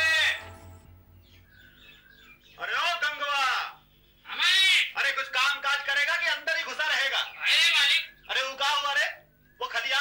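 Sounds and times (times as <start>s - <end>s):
music note with harmonics: 0.0s - 1.9s
faint bird chirps: 0.0s - 5.0s, 6.9s - 10.0s.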